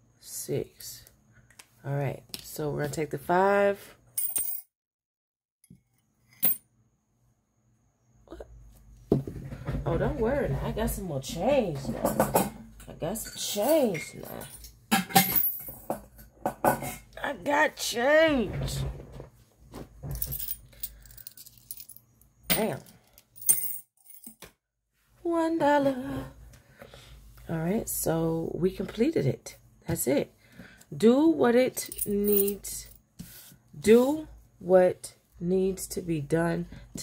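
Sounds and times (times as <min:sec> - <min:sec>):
coin clinking: 0:04.2 - 0:04.7, 0:06.4 - 0:06.6, 0:15.2 - 0:15.9, 0:20.2 - 0:22.6, 0:23.4 - 0:24.4, 0:31.8 - 0:32.6.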